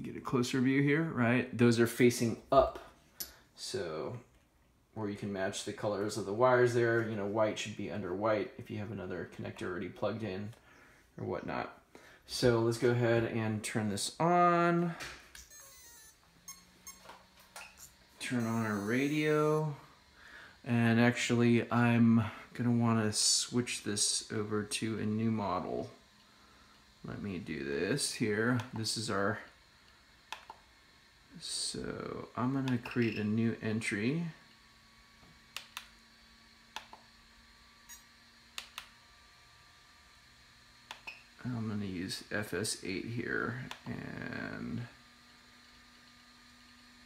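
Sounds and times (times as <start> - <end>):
faint steady hum: 0.0 - 47.0
radio transmitter controls clicking: 29.8 - 30.6, 32.6 - 33.1, 35.5 - 36.0, 36.7 - 37.1, 38.6 - 38.9, 43.6 - 43.9.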